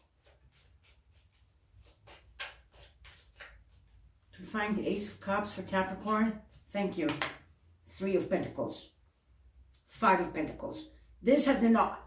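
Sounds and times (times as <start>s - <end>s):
cards being shuffled: 0.2s - 4.3s.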